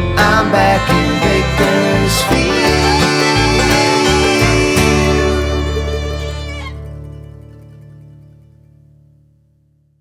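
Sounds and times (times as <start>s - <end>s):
fiddle: 0.0s - 7.5s
banjo: 0.0s - 8.6s
acoustic guitar: 0.0s - 9.9s
bass: 0.0s - 10.0s.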